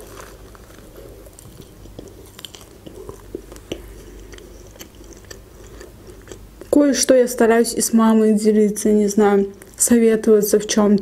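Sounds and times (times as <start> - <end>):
biting into a wrap: 0.0 - 6.8
chewing with wet clicks: 0.6 - 6.8.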